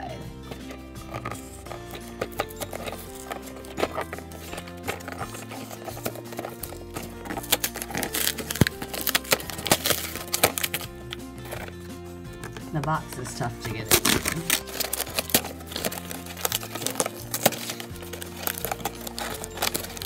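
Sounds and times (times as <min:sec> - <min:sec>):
background music: 0:00.0 - 0:20.0
cardboard box being torn open: 0:01.1 - 0:12.8, 0:13.6 - 0:20.0.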